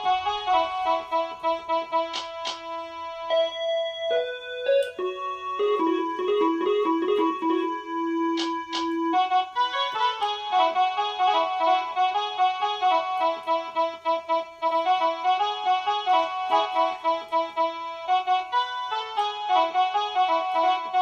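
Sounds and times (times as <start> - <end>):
electronic keyboard melody: 0.0 - 21.0.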